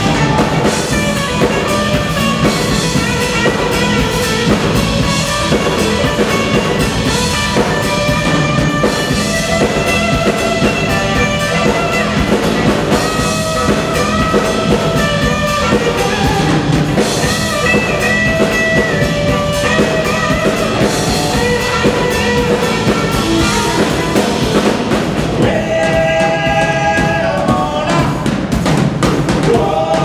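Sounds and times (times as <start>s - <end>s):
amplified harmonica bending notes: 0.0s - 24.6s
drum kit: 0.0s - 30.0s
electric guitar: 0.0s - 30.0s.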